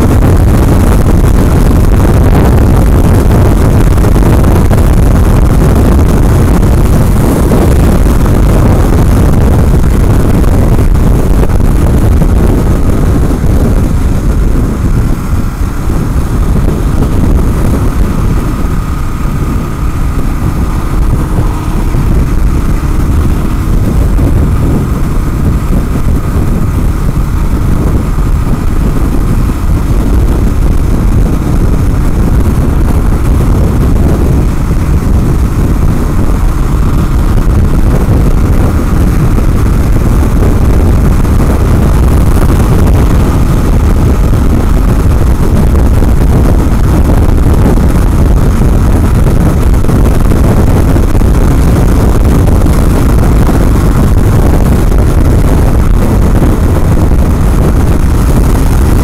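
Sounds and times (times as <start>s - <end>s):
motorcycle engine running: 0.0s - 59.0s
wind buffeting microphone: 0.0s - 59.0s.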